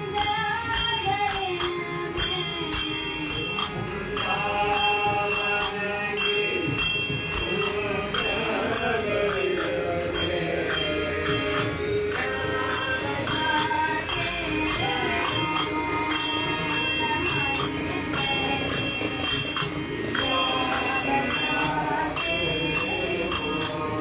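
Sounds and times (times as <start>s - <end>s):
group devotional singing: 0.0s - 24.0s
small hand cymbals clashing: 0.0s - 24.0s.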